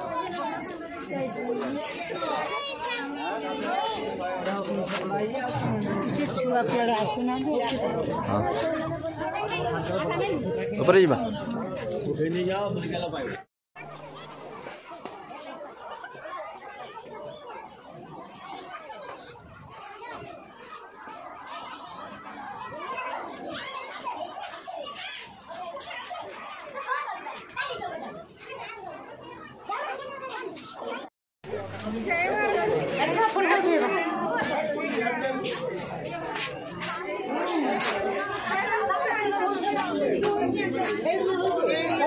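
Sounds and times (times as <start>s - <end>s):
crowd talking: 0.0s - 42.0s
overlapping chatter of voices: 0.0s - 42.0s.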